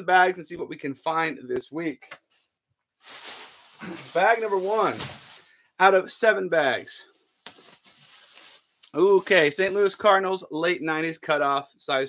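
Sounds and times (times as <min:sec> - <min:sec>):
plastic bag rustling: 0:03.0 - 0:05.6, 0:06.6 - 0:10.1.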